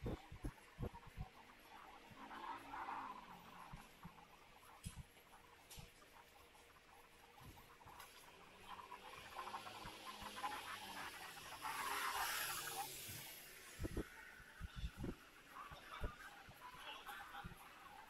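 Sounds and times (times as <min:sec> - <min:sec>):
faint city street ambience: 0:00.0 - 0:18.0.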